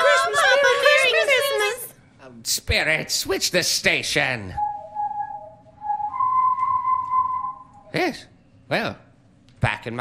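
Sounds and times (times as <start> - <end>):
whistled tone sound effect: 4.6 - 8.0.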